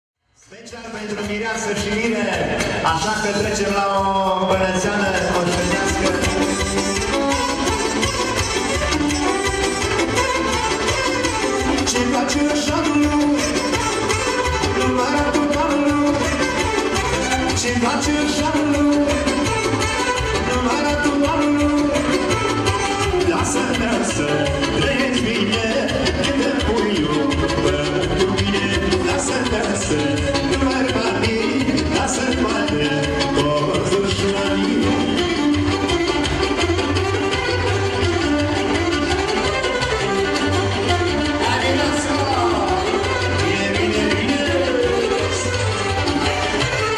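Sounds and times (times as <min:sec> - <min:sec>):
live band playing folk dance music: 0:00.2 - 0:46.9
clarinet: 0:05.5 - 0:25.1, 0:26.8 - 0:46.9
saxophone: 0:05.5 - 0:26.1, 0:29.6 - 0:46.9.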